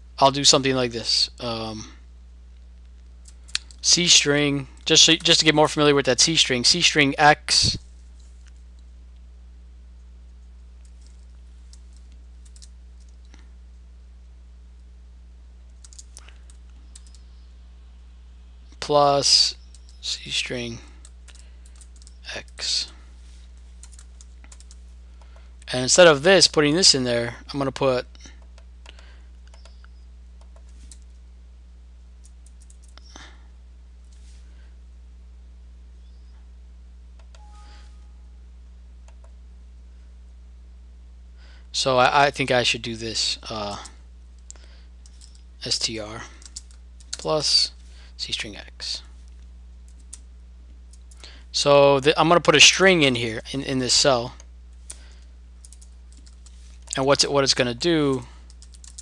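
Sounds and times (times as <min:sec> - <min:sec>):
low electrical hum: 0:00.0 - 0:59.0
faint keyboard clicks: 0:10.8 - 0:13.4, 0:15.8 - 0:17.2, 0:21.0 - 0:22.6, 0:23.8 - 0:25.7, 0:46.4 - 0:47.3, 0:54.8 - 0:57.0.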